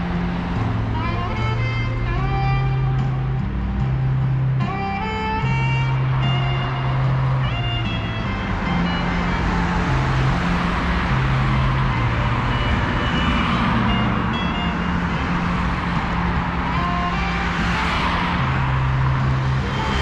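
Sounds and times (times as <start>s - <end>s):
low engine hum: 0.0s - 20.0s
motor vehicles passing: 0.0s - 20.0s.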